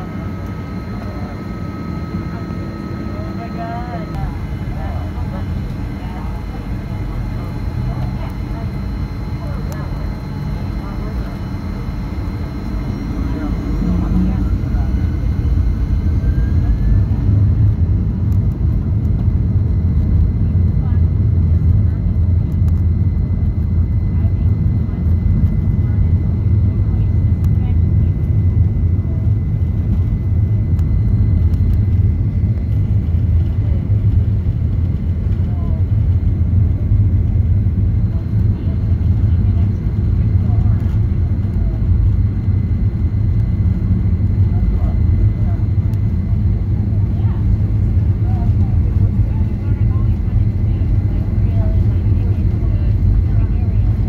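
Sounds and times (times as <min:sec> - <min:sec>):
rising engine whine: 0:00.0 - 0:45.2
faint engine whine: 0:00.0 - 0:54.0
jet engines rumbling: 0:00.0 - 0:54.0.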